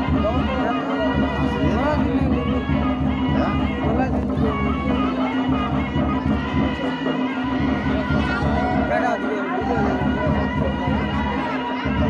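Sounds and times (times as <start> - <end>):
crowd chattering: 0.0 - 12.0
drums: 0.0 - 12.0
wind instrument droning note: 0.0 - 12.0.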